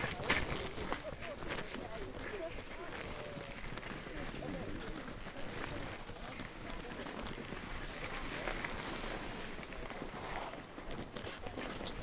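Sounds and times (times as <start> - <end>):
faint voices: 0.0 - 12.0
skis scraping on snow: 0.0 - 12.0.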